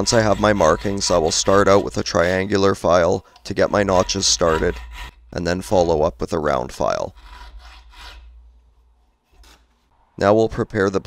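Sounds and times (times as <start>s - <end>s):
file rasping on steel blade: 0.0s - 2.7s, 3.3s - 5.4s, 7.1s - 8.4s.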